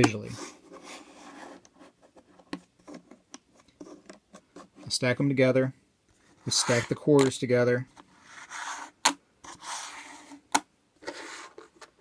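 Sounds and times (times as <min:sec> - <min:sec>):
coins scraping on a surface: 0:08.2 - 0:08.9.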